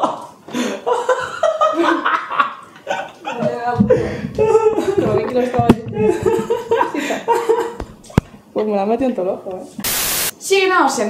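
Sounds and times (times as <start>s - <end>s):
person laughing: 0.8s - 7.8s.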